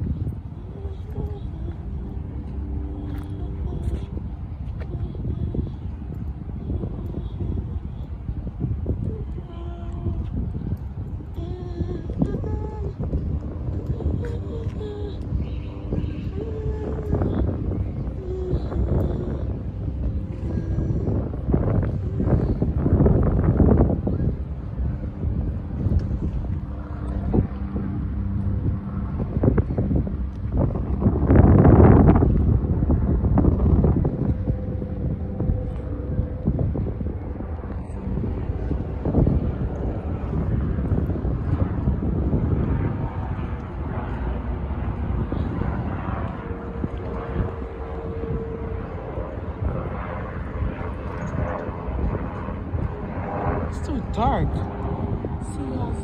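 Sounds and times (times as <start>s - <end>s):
steady low rumble: 0.0s - 56.0s
wind buffeting microphone: 0.0s - 56.0s.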